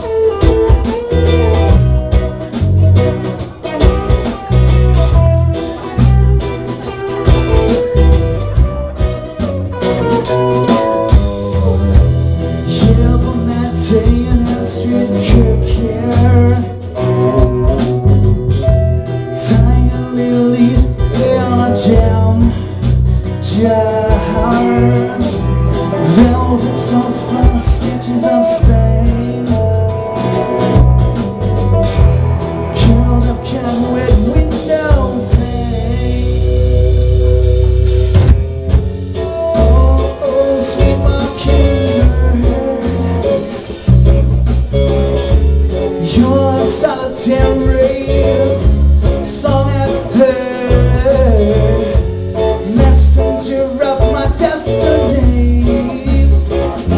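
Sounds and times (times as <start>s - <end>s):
bass guitar: 0.0s - 56.9s
drum kit with cymbal strikes: 0.0s - 56.9s
electric and acoustic guitars: 0.0s - 56.9s
live rock band: 0.0s - 56.9s.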